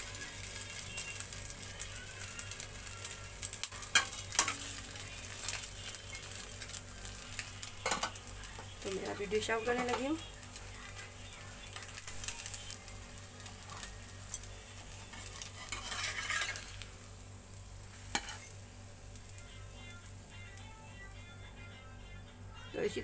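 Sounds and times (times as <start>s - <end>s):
toast sizzling in a frying pan: 0.0s - 21.5s
metal spatula scraping: 13.5s - 16.9s, 18.0s - 18.6s.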